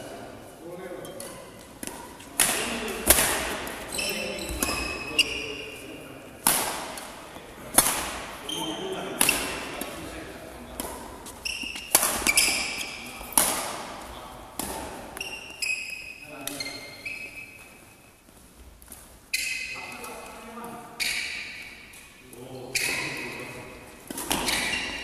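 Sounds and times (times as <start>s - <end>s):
racket striking shuttlecock: 1.2s - 3.8s, 6.4s - 7.1s, 7.7s - 8.4s, 9.2s - 10.0s, 10.7s - 14.0s, 14.6s - 15.5s, 24.1s - 25.0s
shoes squeaking on court floor: 3.6s - 6.1s, 8.2s - 13.4s, 14.0s - 25.0s.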